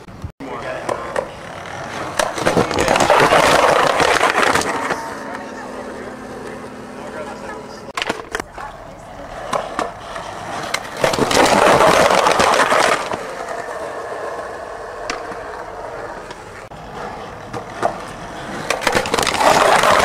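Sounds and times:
skateboard wheels rolling on asphalt: 0.0 - 6.9, 7.6 - 20.0
skateboard clacks: 0.6 - 5.4, 8.0 - 20.0.

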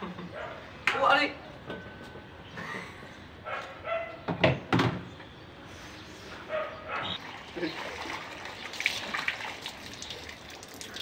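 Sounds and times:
dog barking: 3.4 - 4.2, 6.5 - 7.2.

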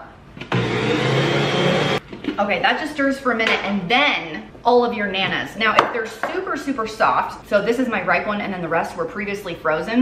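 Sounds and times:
electric stand mixer running: 0.5 - 2.0.

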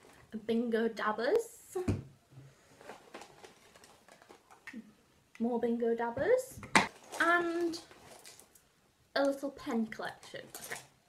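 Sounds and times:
plastic dabbers clicking and rustling: 2.8 - 4.8, 6.6 - 9.4, 10.0 - 11.0.

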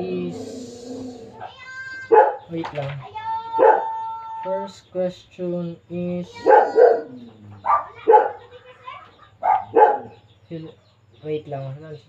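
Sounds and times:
dog barking: 2.1 - 2.5, 3.6 - 4.0, 6.4 - 8.5, 9.4 - 10.2.

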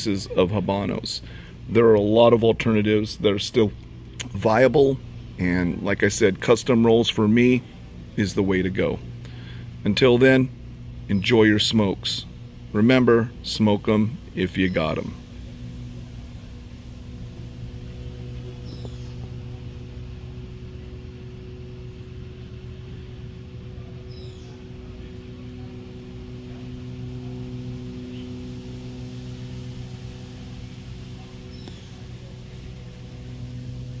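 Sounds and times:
low mechanical hum: 0.0 - 34.0
faint high chirps: 16.0 - 21.0.

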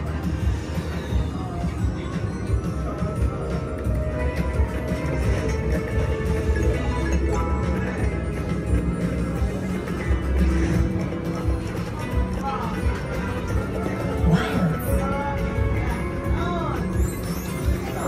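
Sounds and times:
casino background noise: 0.0 - 18.0
slot machine game music: 0.0 - 18.0.

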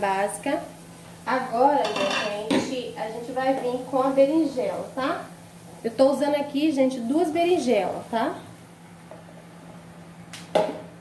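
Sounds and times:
kitchenware clanking: 1.8 - 2.8.

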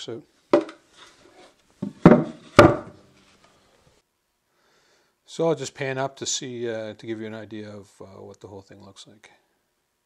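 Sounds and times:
knocks on wooden box: 0.5 - 0.8, 1.8 - 3.0.

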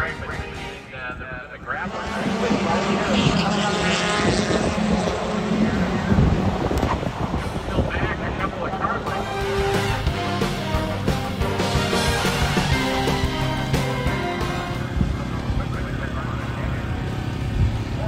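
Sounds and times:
background music: 0.0 - 3.1, 8.5 - 16.2
public address announcer: 0.0 - 4.0, 7.6 - 9.6, 15.2 - 17.2
car engine running: 1.6 - 18.0.

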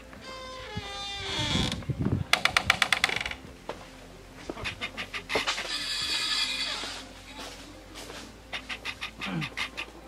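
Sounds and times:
door creaking on hinges: 0.2 - 3.4.

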